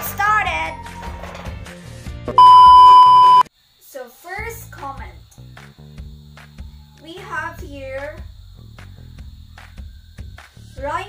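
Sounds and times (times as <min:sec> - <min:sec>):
loud electronic beep: 0:02.4 - 0:03.5
faint background music: 0:03.8 - 0:11.0.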